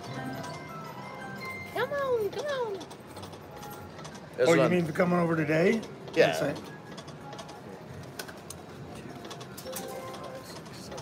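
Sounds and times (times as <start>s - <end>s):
slot machine electronic tones: 0.0s - 2.4s, 9.6s - 10.6s
slot machine reel clicks: 0.0s - 4.6s, 9.2s - 11.0s
casino background noise: 0.0s - 11.0s.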